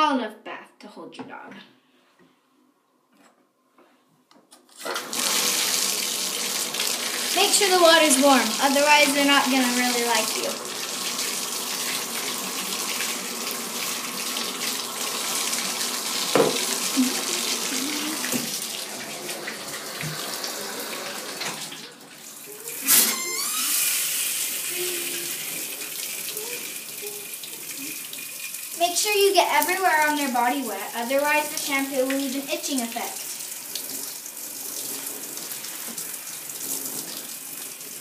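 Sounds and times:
tap water running into bath: 0:04.8 - 0:38.0
sharp knock: 0:16.3 - 0:16.6.

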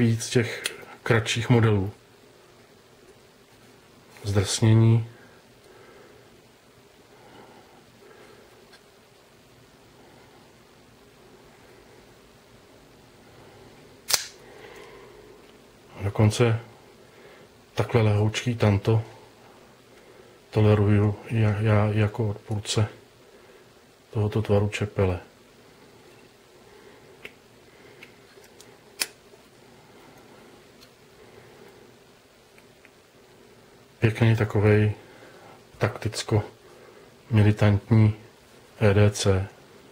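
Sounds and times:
knife blade snapping open: 0:14.1 - 0:14.4.

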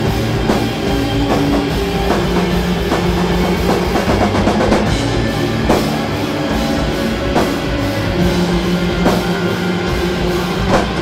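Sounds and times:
bass guitar: 0:00.0 - 0:11.0
drums: 0:00.0 - 0:11.0
electric guitar: 0:00.0 - 0:11.0.

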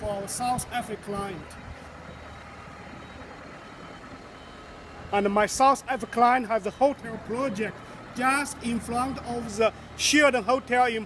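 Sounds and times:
forklift engine running: 0:00.0 - 0:11.0.

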